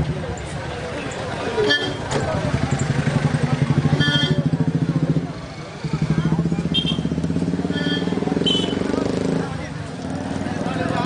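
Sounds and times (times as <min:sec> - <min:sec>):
crowd voices: 0:00.0 - 0:11.0
motorcycle engine running: 0:01.9 - 0:11.0.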